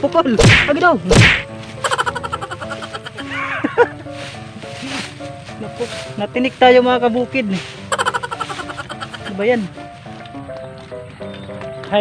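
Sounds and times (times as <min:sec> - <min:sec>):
background music: 0:00.0 - 0:12.0
loud whack: 0:00.4 - 0:01.5.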